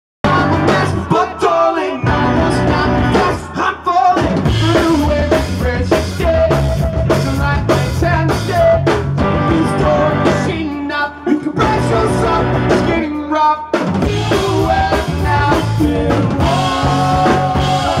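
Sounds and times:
electric guitars: 0:00.2 - 0:13.1, 0:14.0 - 0:18.0
drum kit: 0:00.2 - 0:18.0
keyboards: 0:00.2 - 0:18.0
man singing: 0:00.2 - 0:18.0.

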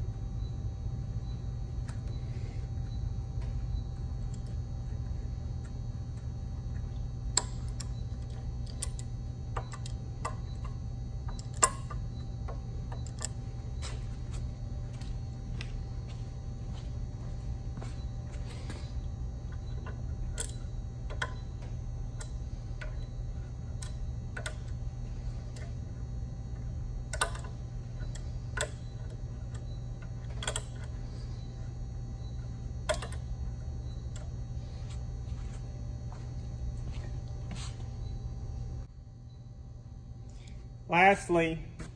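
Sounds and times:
low hum: 0:00.0 - 0:41.9.

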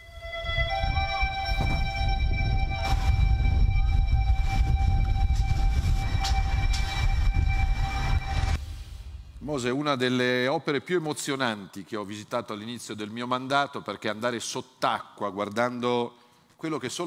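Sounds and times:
sustained droning chord: 0:00.0 - 0:08.6
deep rumble: 0:00.0 - 0:09.6.

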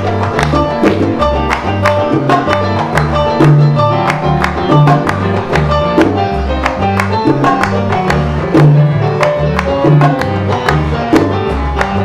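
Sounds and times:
salsa band playing: 0:00.0 - 0:12.0.

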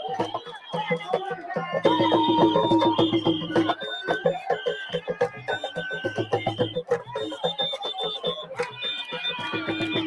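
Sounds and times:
crowd voices: 0:00.0 - 0:10.0
drum strokes: 0:00.0 - 0:10.0.

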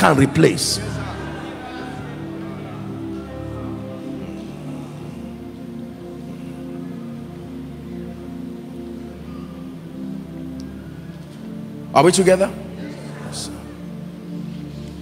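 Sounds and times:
soft slow held chords: 0:00.4 - 0:15.0.

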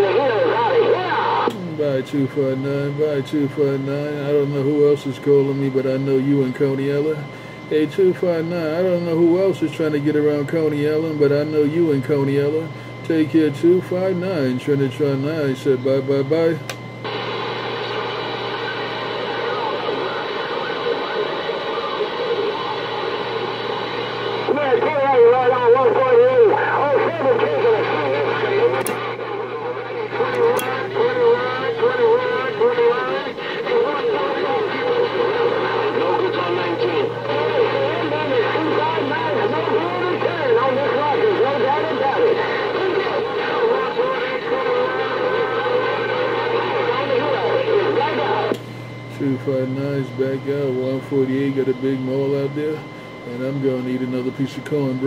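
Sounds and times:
garbled voices over radio: 0:00.0 - 0:07.1, 0:18.2 - 0:48.5
buzzy radio carrier tone: 0:00.0 - 0:55.0.

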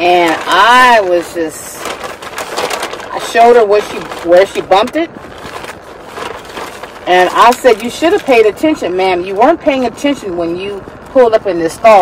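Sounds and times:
faint background hiss in car: 0:00.0 - 0:12.0.

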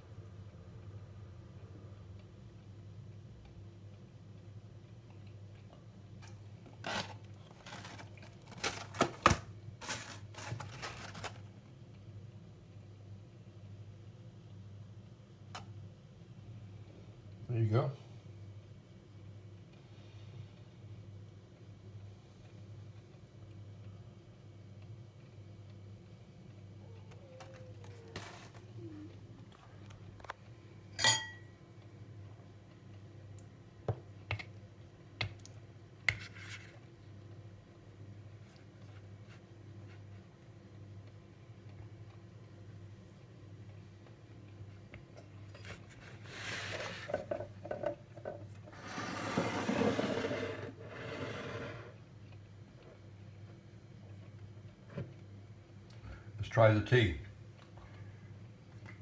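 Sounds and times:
low steady hum: 0:00.0 - 0:59.0
sharp ringing clink: 0:31.0 - 0:31.5.

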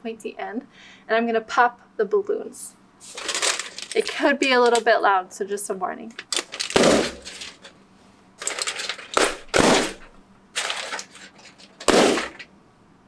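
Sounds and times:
foil crackling: 0:03.0 - 0:04.8, 0:06.2 - 0:07.7, 0:08.4 - 0:12.4
balloons popping: 0:06.6 - 0:07.3, 0:09.1 - 0:10.1, 0:11.9 - 0:12.4.

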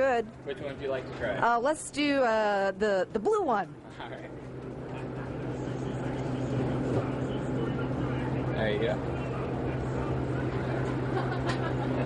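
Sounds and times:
margarita machine humming: 0:00.0 - 0:12.0.

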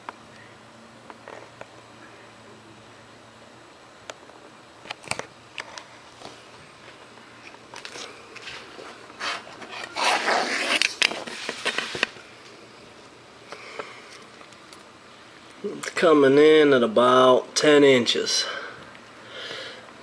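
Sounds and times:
rustling scrape: 0:07.9 - 0:12.1.

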